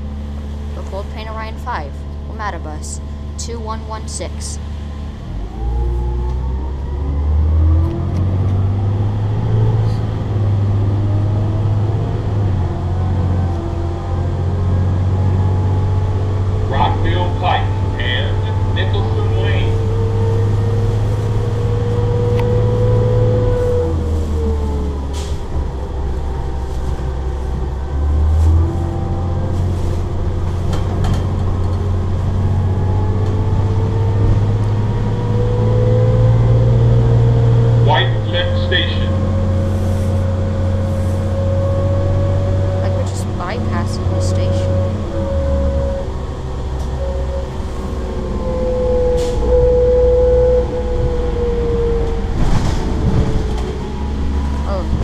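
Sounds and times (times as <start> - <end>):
bus engine drone: 0.0 - 55.0
drivetrain whine: 0.0 - 55.0.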